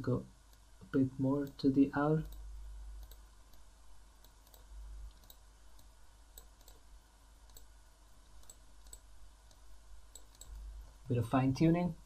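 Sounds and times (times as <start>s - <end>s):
computer mouse clicks: 2.2s - 10.7s.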